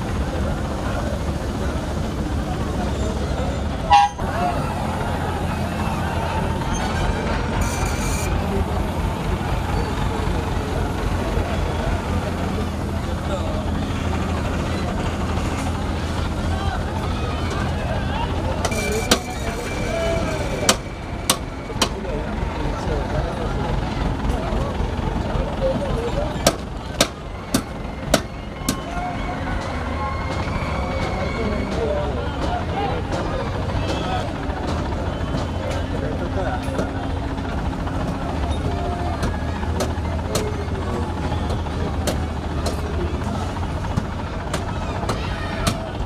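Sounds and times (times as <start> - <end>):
crane engine running: 0.0 - 46.0.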